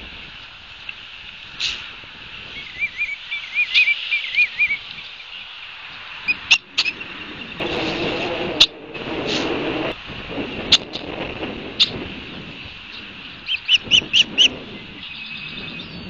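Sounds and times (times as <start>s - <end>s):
bird whistled trill: 2.6s - 4.8s, 13.4s - 16.0s
rushing noise: 5.6s - 16.0s
bird chips: 12.9s - 16.0s.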